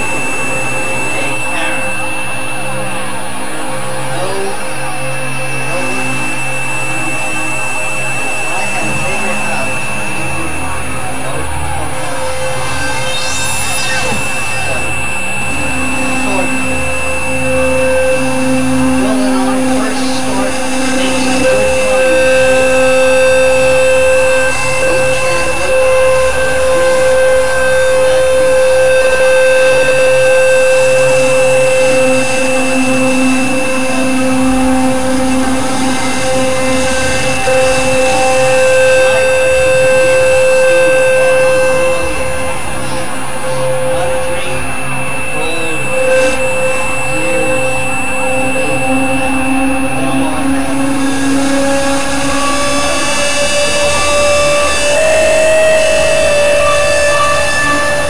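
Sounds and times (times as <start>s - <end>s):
synthesizer drone: 0.0s - 58.0s.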